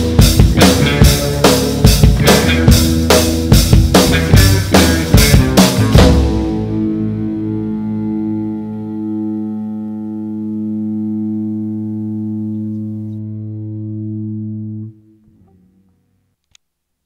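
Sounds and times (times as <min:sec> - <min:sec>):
distorted electric guitar chord ringing: 0:00.0 - 0:16.4.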